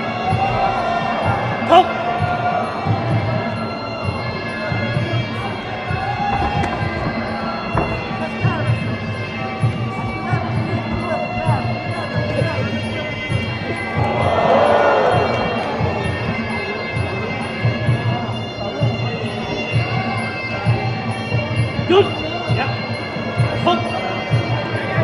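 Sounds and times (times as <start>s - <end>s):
crowd noise: 0.0s - 25.0s.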